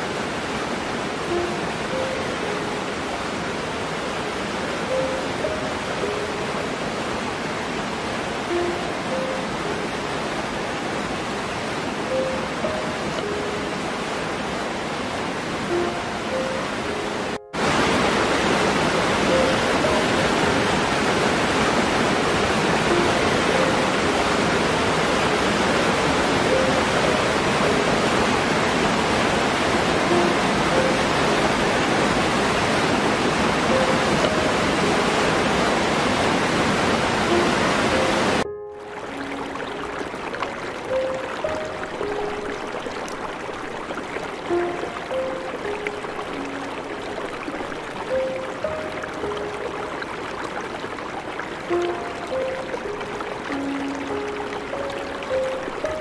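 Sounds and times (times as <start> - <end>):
soft slow melody: 1.2 - 56.0
waterfall pouring into pool: 17.6 - 56.0.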